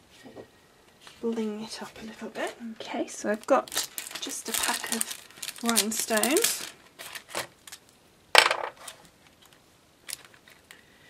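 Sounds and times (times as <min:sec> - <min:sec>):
plastic clatter: 0:08.4 - 0:09.0.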